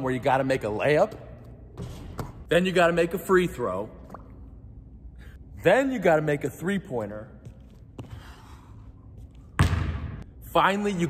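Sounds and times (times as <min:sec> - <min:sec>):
basketball bouncing on hardwood floor: 0:09.6 - 0:10.2.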